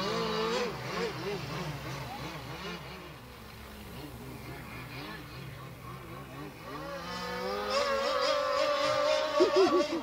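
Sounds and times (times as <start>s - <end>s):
toy boat motor whining: 0.0s - 10.0s.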